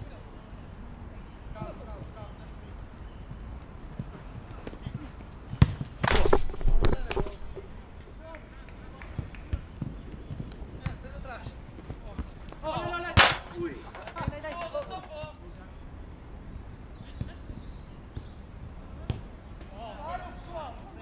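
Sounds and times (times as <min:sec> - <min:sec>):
football being kicked: 0:05.0 - 0:07.2, 0:09.2 - 0:12.3.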